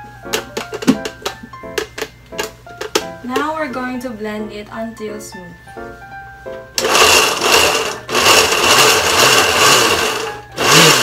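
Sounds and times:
blender running: 6.8s - 11.0s.

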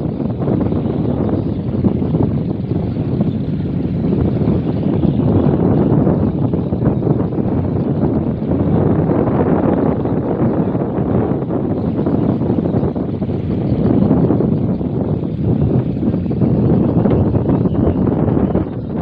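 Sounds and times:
boat engine running: 0.0s - 19.0s
wind noise on microphone: 0.0s - 19.0s.

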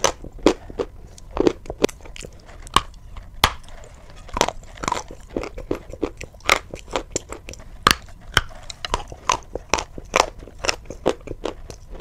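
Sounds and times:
crunchy chewing: 0.0s - 12.0s.

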